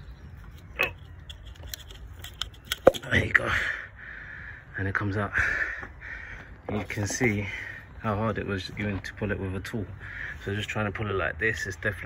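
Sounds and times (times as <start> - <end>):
tool handling clicks: 0.6 - 3.0.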